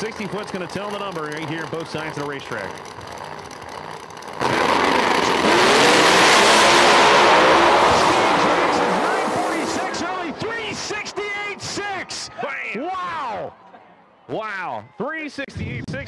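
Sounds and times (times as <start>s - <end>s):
race car engines at full throttle: 0.0s - 12.8s
voices: 7.2s - 16.0s.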